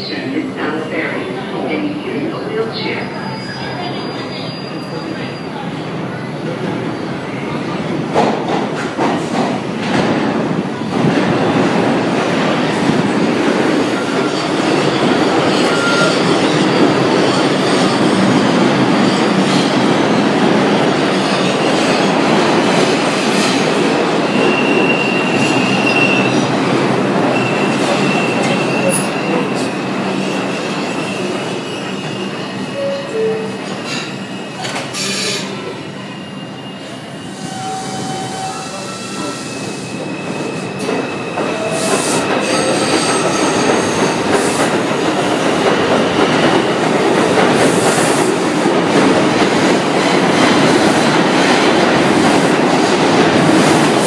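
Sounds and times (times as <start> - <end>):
subway train running noise: 0.0 - 54.0
high wheel squeal: 13.9 - 18.3, 24.2 - 26.4, 27.3 - 43.9.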